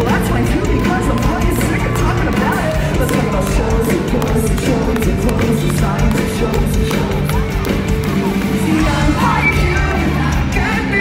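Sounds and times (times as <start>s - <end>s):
bass guitar: 0.0s - 11.0s.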